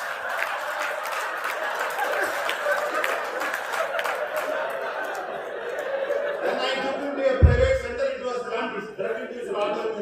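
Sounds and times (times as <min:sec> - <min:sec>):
audience laughing: 0:00.0 - 0:10.0.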